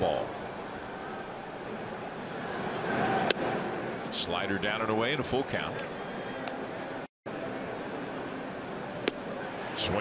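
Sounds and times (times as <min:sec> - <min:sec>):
crowd murmur: 0:05.8 - 0:10.0.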